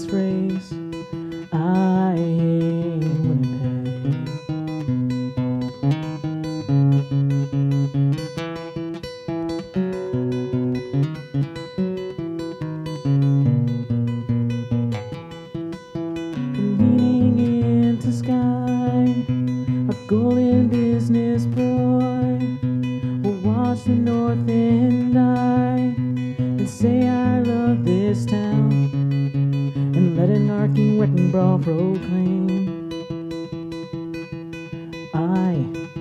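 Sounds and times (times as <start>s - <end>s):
acoustic guitar picked notes: 0.0s - 36.0s
acoustic guitar strummed chords: 0.0s - 36.0s.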